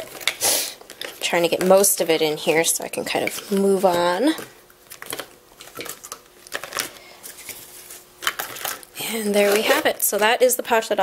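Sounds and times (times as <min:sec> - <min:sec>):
plastic pouch crinkling: 0:00.0 - 0:10.6.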